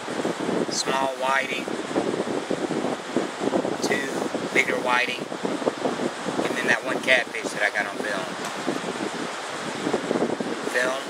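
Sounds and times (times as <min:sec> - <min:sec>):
surf hiss: 0:00.0 - 0:11.0
wind buffeting microphone: 0:00.0 - 0:11.0.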